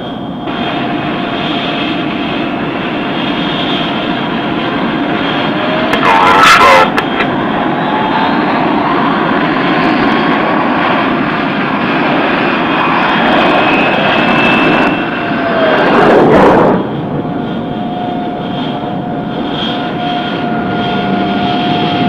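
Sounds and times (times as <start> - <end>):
jet engine rush and whine: 0.0 - 22.0.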